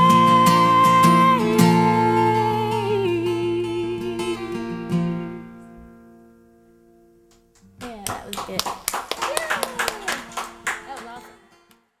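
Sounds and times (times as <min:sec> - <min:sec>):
acoustic guitar chord ringing: 0:00.0 - 0:08.9, 0:09.6 - 0:11.7
people clapping: 0:07.3 - 0:11.8
people talking: 0:07.8 - 0:11.4.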